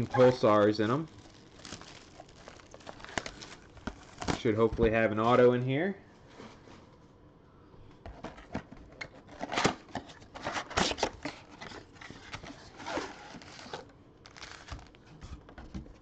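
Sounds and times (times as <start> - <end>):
cardboard and wrappers crinkling: 0.0 - 4.9, 9.4 - 15.3.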